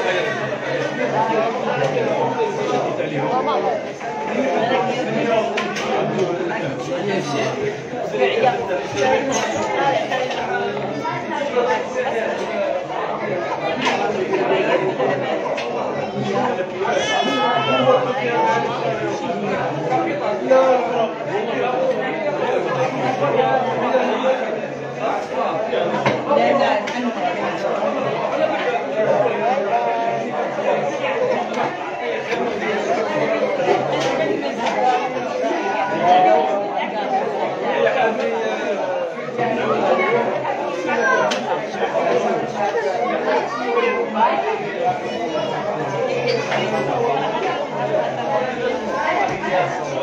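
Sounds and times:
babble of many people talking: 0.0 - 50.0.

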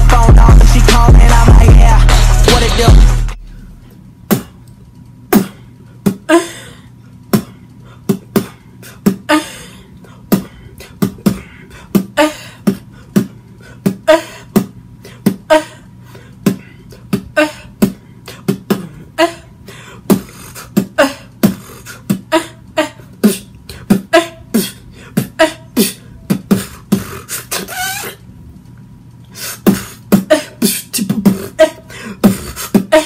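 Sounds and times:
man beatboxing with moaning tone: 0.0 - 4.6, 5.3 - 6.4, 7.2 - 9.5, 10.1 - 28.2, 29.4 - 33.0.

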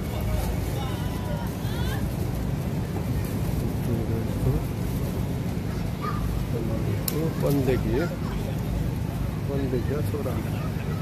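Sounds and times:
faint voices: 0.0 - 11.0
low rumble of street noise: 0.0 - 11.0.

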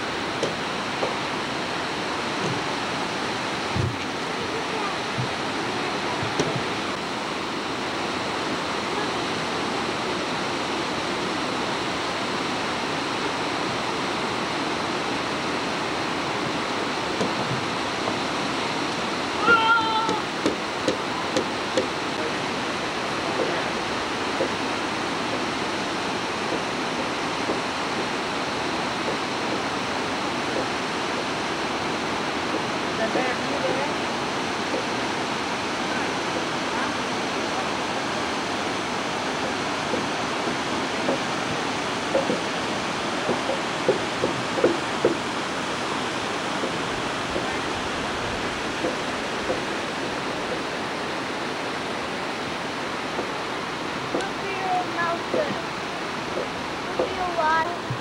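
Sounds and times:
water rushing over rapids: 0.0 - 58.0.

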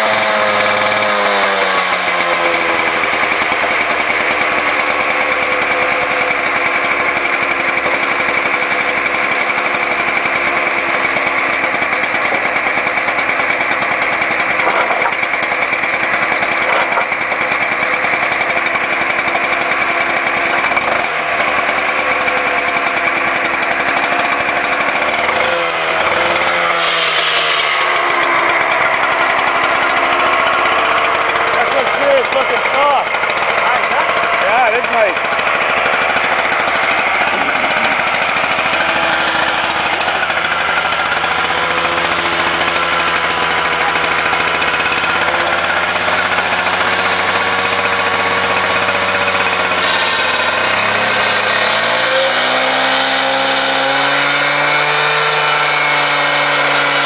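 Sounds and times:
cut-off saw engine running: 0.0 - 57.0
saw blade whine cutting asphalt: 0.0 - 57.0.

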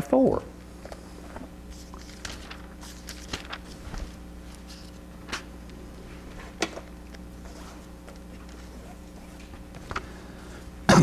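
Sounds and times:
low electrical hum: 0.0 - 11.0
book pages turning: 0.8 - 10.2.

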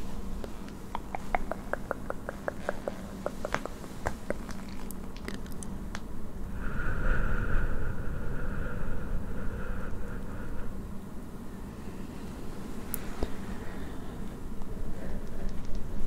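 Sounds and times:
soft airy tone: 6.2 - 16.0
deep breathing into microphone: 6.4 - 15.6.

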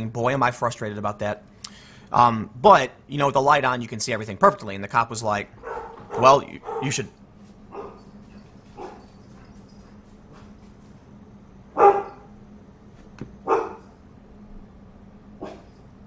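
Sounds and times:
dog barking: 5.6 - 7.0, 7.7 - 8.1, 8.8 - 9.8, 11.8 - 12.3, 13.4 - 13.9, 15.4 - 15.7.

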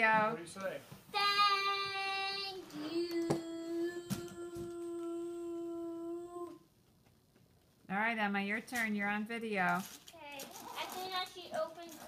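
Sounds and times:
child singing a long note: 1.2 - 6.6.

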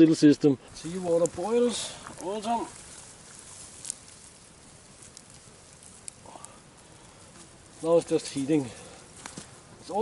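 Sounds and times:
campfire crackling: 0.0 - 10.0
sharp pops of fire: 0.8 - 8.2, 9.1 - 9.6.

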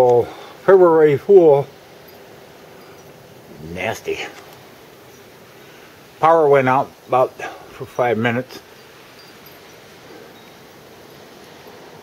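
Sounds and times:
blizzard wind hissing: 0.0 - 12.0.

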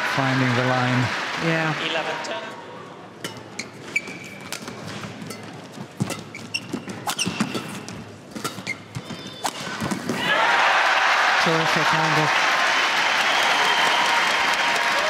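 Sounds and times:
crowd applause: 0.0 - 2.5, 10.2 - 15.0
shoes squeaking on court floor: 3.2 - 10.2
racket striking shuttlecock: 4.4 - 10.2.

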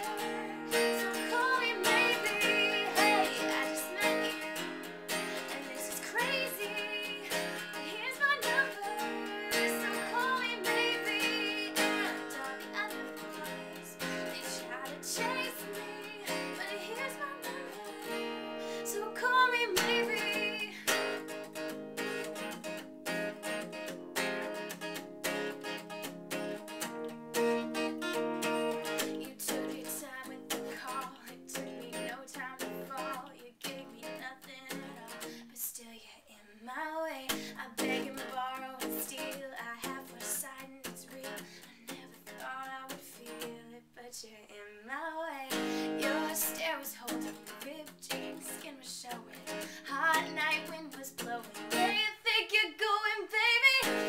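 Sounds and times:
woman singing pop melody: 0.0 - 24.7, 28.0 - 54.0
strummed acoustic guitar: 0.0 - 35.4, 37.2 - 43.8, 45.4 - 54.0.

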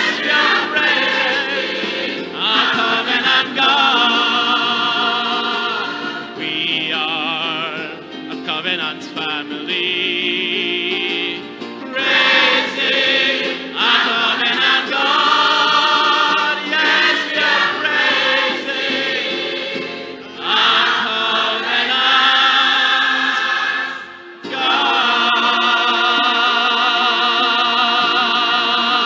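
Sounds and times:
choir singing gospel: 0.0 - 29.0.

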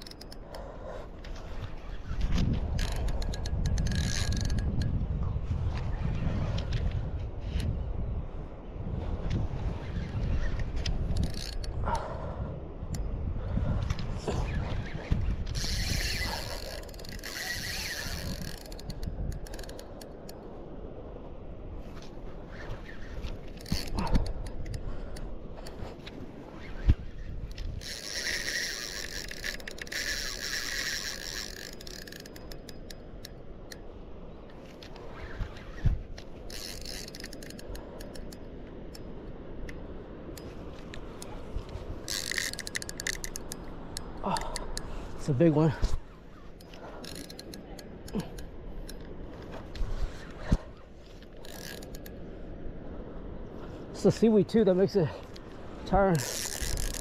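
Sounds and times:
fishing reel rapid clicking: 0.0 - 0.6, 2.7 - 4.9, 11.0 - 11.8, 15.5 - 20.4, 23.6 - 24.9, 27.6 - 33.4, 36.5 - 38.4, 42.1 - 44.6, 46.6 - 49.0, 51.4 - 52.2, 56.1 - 57.0.

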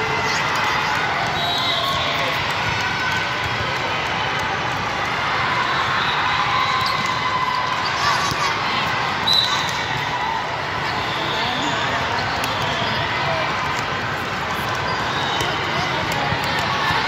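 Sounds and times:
many voices in a sports hall: 0.0 - 17.0
volleyballs struck and bouncing: 13.4 - 17.0.

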